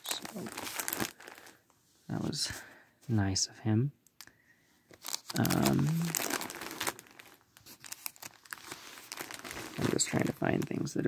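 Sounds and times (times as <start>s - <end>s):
crinkling handling noise: 0.0s - 3.3s, 4.0s - 11.0s.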